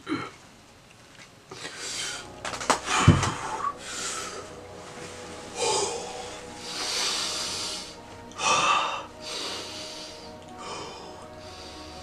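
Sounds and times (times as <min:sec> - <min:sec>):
heavy breathing: 0:01.5 - 0:12.0.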